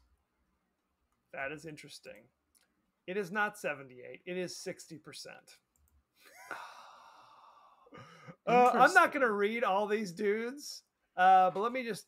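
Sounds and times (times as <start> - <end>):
person sighing: 6.3 - 8.9.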